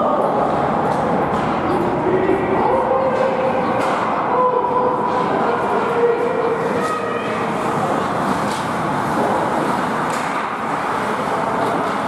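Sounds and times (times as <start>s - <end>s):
distant voices: 0.0s - 12.0s
skates scraping ice: 5.6s - 12.0s.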